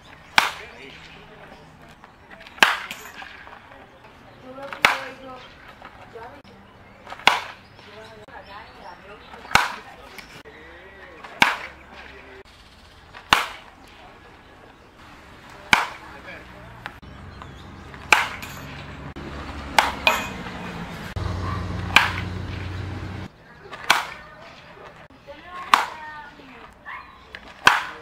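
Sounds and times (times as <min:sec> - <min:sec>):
baseball bat hitting balls: 0:00.0 - 0:06.4, 0:07.0 - 0:08.3, 0:09.0 - 0:10.4, 0:11.0 - 0:23.0, 0:23.6 - 0:28.0.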